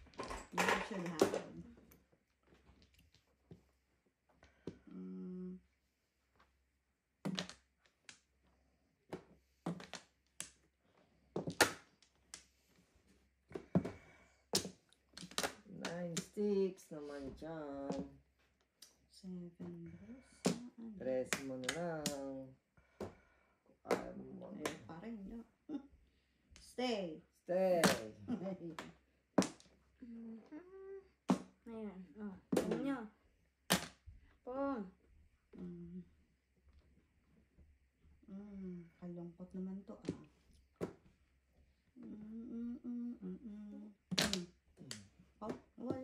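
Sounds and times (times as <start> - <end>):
person humming a tune: 4.9 - 5.6, 35.6 - 36.1, 42.0 - 44.0.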